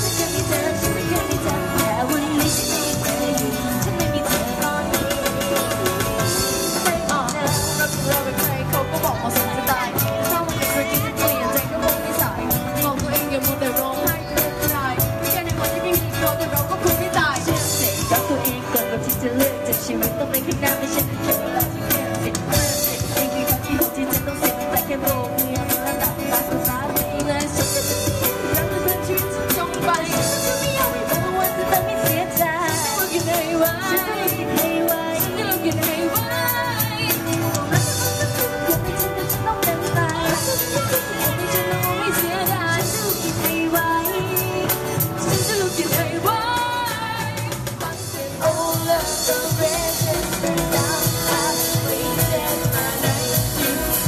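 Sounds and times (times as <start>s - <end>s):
drum beat: 0.0s - 54.0s
live pop band playing: 0.0s - 54.0s
women singing: 0.0s - 54.0s
girls singing: 45.3s - 54.0s.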